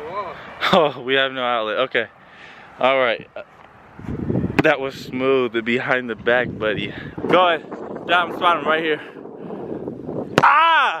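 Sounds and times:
person yelling: 10.4 - 11.0.

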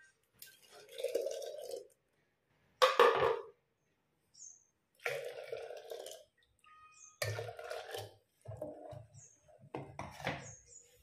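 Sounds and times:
bird chirping: 3.8 - 4.8, 6.6 - 7.3, 9.0 - 9.6, 10.3 - 11.0.

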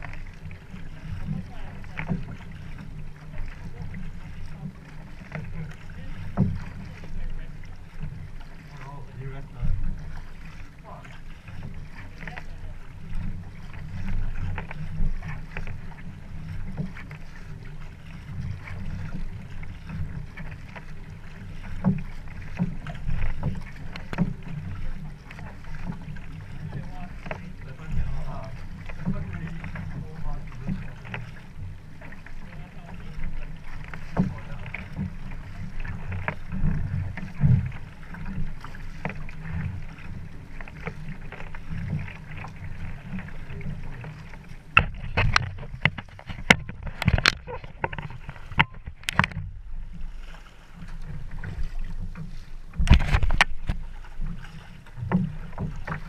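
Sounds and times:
paddle strokes splashing: 0.0 - 56.0
water slapping boat hull: 0.0 - 56.0
wind rumble on microphone: 51.3 - 55.9.

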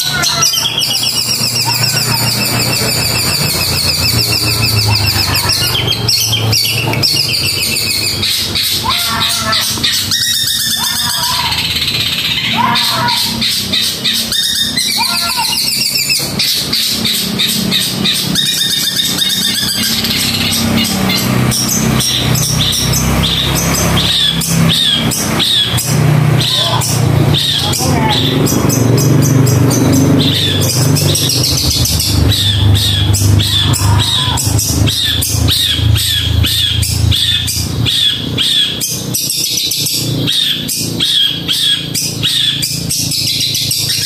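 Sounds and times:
bird singing chattering trills: 0.0 - 44.0.

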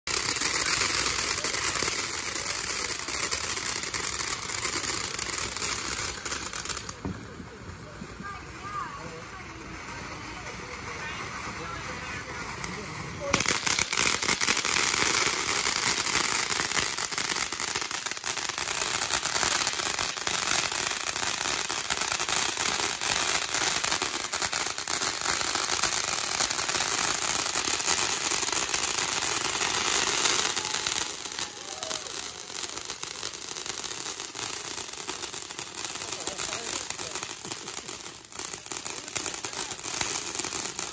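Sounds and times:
firework fountain hissing and crackling: 0.0 - 40.9.

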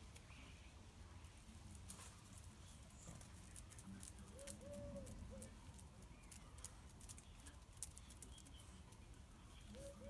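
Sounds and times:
light ticks and patter: 1.2 - 10.0
dove cooing: 4.3 - 5.6, 9.7 - 10.0.

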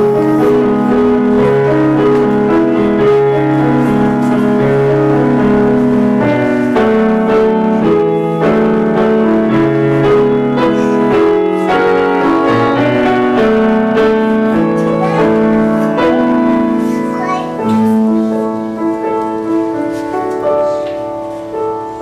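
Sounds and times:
piano melody over chords: 0.0 - 22.0.

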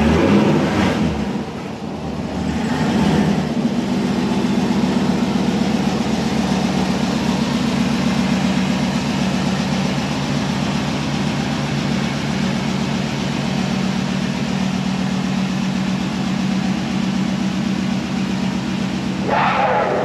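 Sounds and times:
car engine near idle: 0.0 - 20.0.

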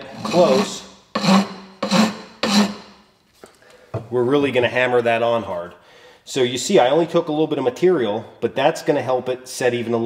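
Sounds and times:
rasp filing wooden handle: 0.0 - 2.9.

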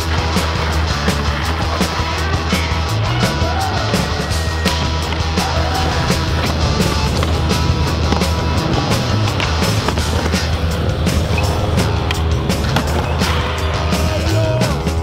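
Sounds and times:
loud music with steady beat: 0.0 - 15.0
skateboard wheels rolling on concrete: 0.0 - 15.0.

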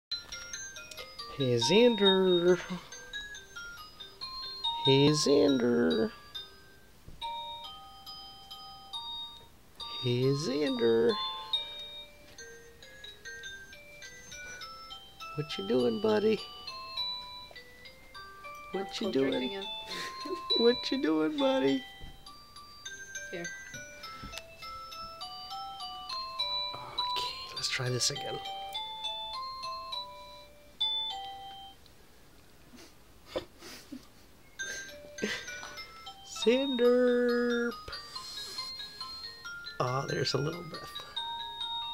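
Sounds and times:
tinkling bell-like chime melody: 0.1 - 31.8, 33.7 - 41.9.

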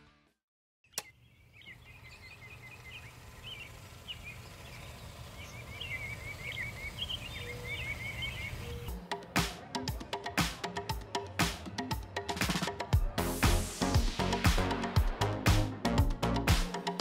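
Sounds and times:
birds chirping and trilling: 0.8 - 9.1.

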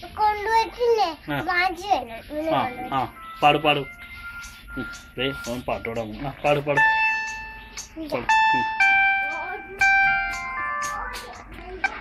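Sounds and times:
electronic chime tune: 2.8 - 12.0.

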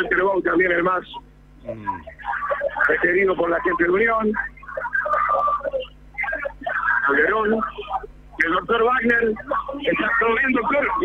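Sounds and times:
voices talking: 1.6 - 8.6.

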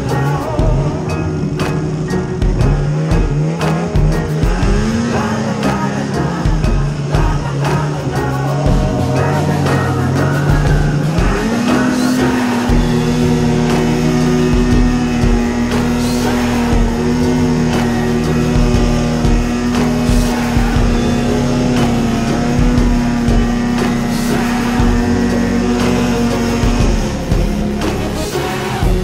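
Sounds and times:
music playing: 0.0 - 29.0
snowmobile engine revving: 0.0 - 29.0.

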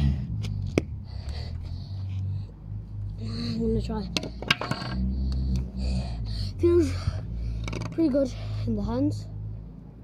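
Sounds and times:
wooden stick clattering on road: 4.1 - 5.1, 7.6 - 8.1.

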